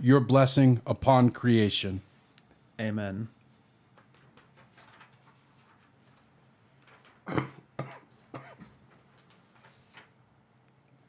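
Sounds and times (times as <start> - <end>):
person coughing: 7.3 - 8.8.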